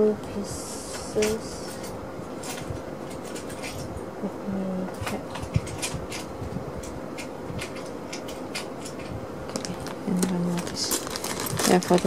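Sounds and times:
faint steady hum: 0.0s - 12.0s
plastic bag crinkling: 9.5s - 12.0s.

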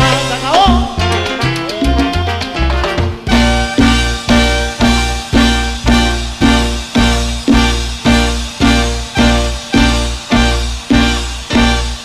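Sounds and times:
horn section: 0.0s - 12.0s
percussion hits: 0.0s - 12.0s
salsa band playing: 0.0s - 12.0s
steady bass line: 0.0s - 12.0s.

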